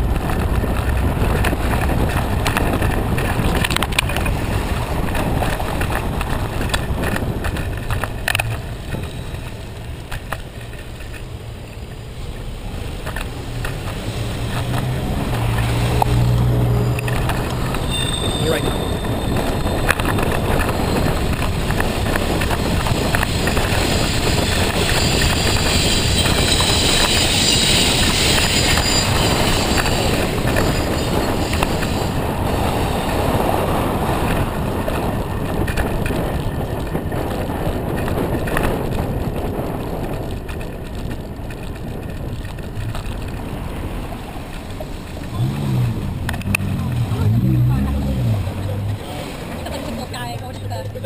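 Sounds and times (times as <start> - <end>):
passing city traffic: 0.0 - 51.0
road and tyre noise: 0.0 - 51.0
vehicle engine humming: 0.0 - 51.0
wind rushing over microphone: 0.0 - 51.0.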